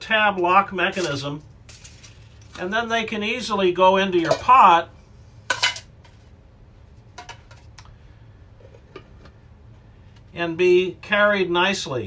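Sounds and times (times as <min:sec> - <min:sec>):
metal pieces clinking against a pot: 0:05.5 - 0:05.9.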